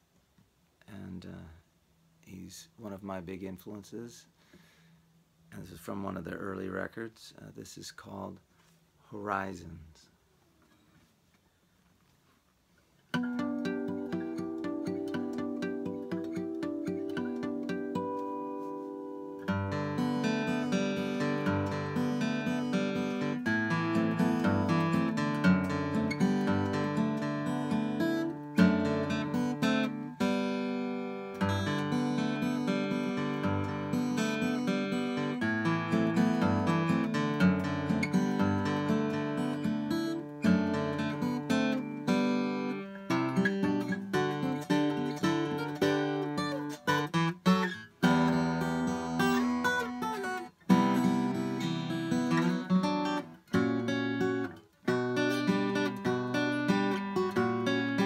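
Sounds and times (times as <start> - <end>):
fingerstyle acoustic guitar: 10.6 - 58.0.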